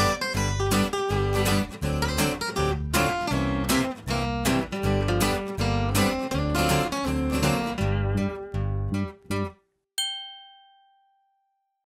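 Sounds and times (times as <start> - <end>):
bright chime ringing: 10.0 - 11.4.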